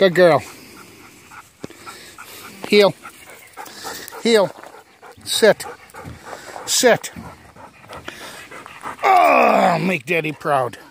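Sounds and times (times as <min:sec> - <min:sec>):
dog panting: 0:00.0 - 0:10.9.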